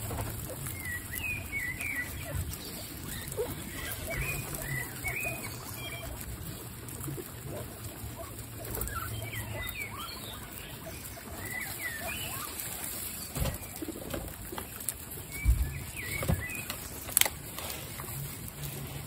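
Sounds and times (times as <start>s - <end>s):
guinea pigs rustling and nibbling: 0.0s - 19.0s.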